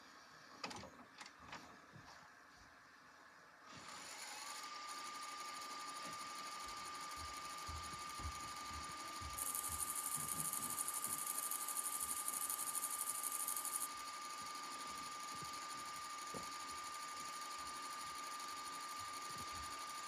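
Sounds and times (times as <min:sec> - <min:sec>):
tape rewinding whine: 0:03.8 - 0:20.0.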